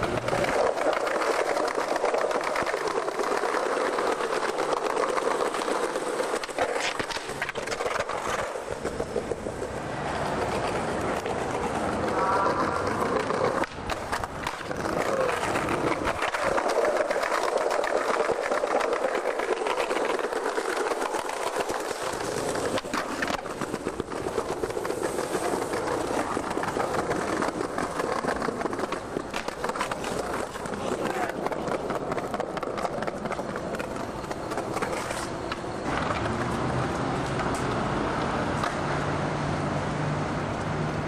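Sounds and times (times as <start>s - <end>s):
skateboard clacks: 0.0s - 39.1s
skateboard wheels rolling on concrete: 0.0s - 41.0s.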